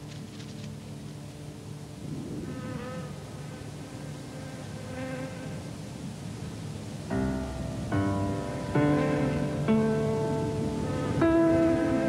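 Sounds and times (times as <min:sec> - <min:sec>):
low buzzing drone: 0:00.0 - 0:12.0.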